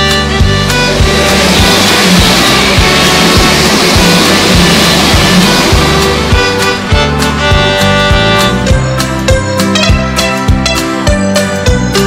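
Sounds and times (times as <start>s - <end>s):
music with steady beat: 0.0s - 12.0s
electric train passing: 0.1s - 10.0s.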